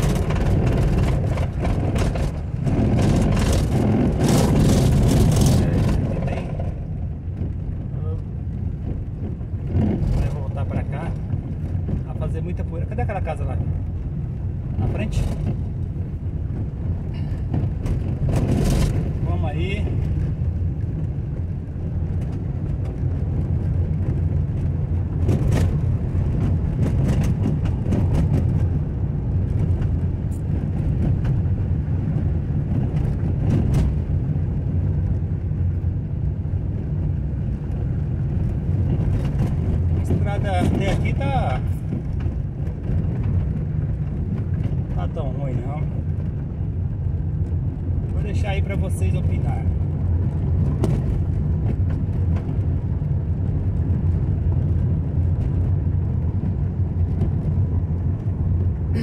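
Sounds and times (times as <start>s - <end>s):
knocks and rattles from bumps: 0.0s - 7.6s, 22.2s - 34.2s, 49.4s - 58.3s
car engine and tyres rumbling: 0.0s - 59.0s.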